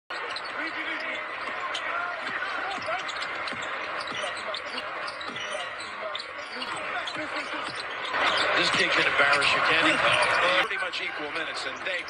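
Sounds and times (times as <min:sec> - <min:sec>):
arena noise: 0:00.1 - 0:12.0
faint voices: 0:00.2 - 0:12.0.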